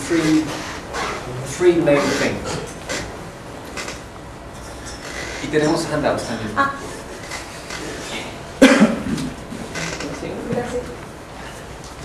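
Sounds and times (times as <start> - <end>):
person coughing: 8.6 - 9.4.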